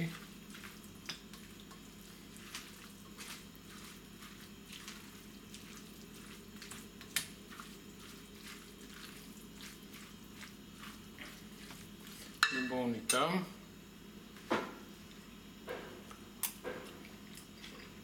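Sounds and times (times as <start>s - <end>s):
spatula squelching in salad: 0.0s - 12.5s.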